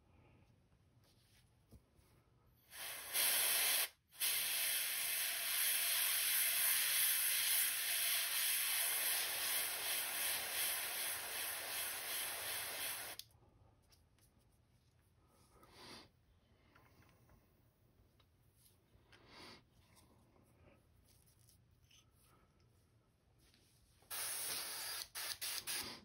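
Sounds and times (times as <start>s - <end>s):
airbrush hiss: 2.6s - 13.2s, 24.0s - 26.0s.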